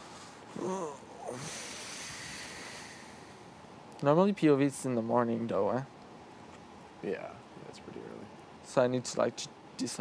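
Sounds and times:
voice murmuring: 0.5 - 1.8.

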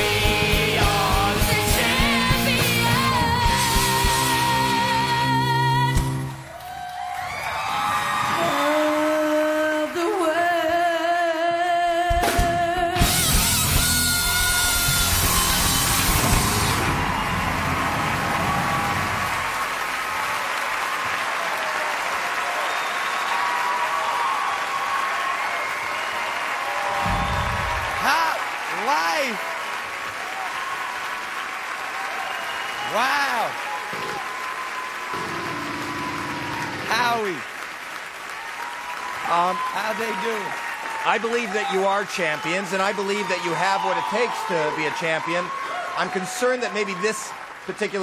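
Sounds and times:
live band song ending: 0.0 - 6.4, 11.9 - 19.5
audience cheering and applauding: 0.0 - 11.3, 12.2 - 48.0
loud whoops: 6.4 - 9.6, 13.0 - 37.2, 38.3 - 47.5.

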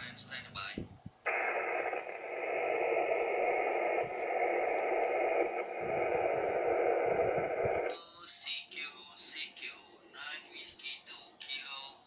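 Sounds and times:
radio receiver static hiss: 0.0 - 9.4.

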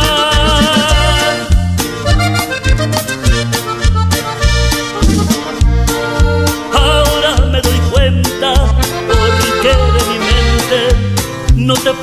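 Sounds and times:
repeating bass line: 0.0 - 11.7
accordion: 0.0 - 12.0.

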